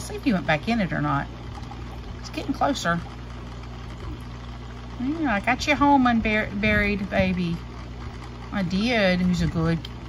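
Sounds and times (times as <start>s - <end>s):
aquarium filter humming: 0.0s - 10.0s.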